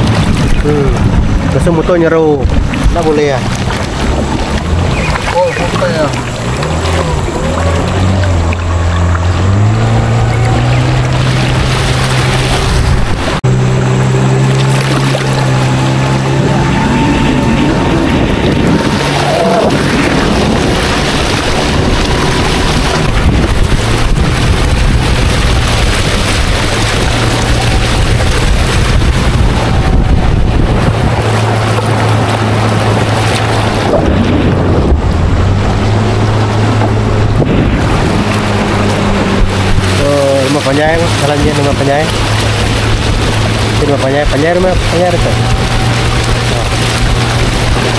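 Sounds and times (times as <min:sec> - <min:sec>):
motorboat engine running: 0:00.0 - 0:47.9
wind and water rushing: 0:00.0 - 0:47.9.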